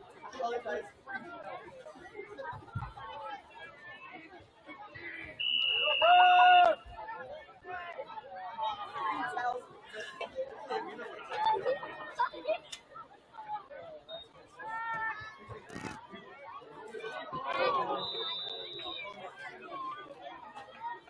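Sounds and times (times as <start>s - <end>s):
voices chattering: 0.0s - 21.0s
referee whistle blast: 5.4s - 6.8s, 18.0s - 19.0s.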